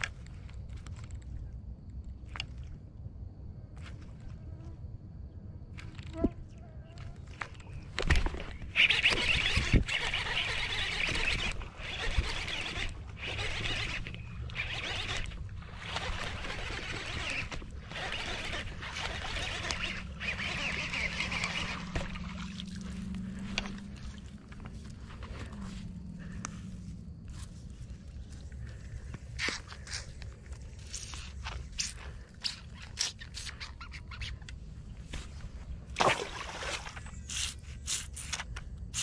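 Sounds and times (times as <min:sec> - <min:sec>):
insects buzzing: 0:03.8 - 0:39.0
low steady hum: 0:12.8 - 0:32.9
ducks calling: 0:16.0 - 0:24.2.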